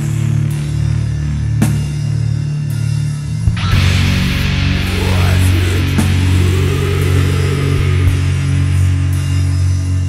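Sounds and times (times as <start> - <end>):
distorted guitars low chord: 0.0 - 10.0.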